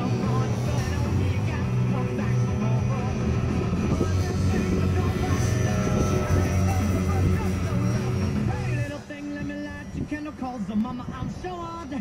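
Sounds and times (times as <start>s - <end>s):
model plane motor high tone: 0.0s - 11.9s
music with vocal: 0.0s - 12.0s.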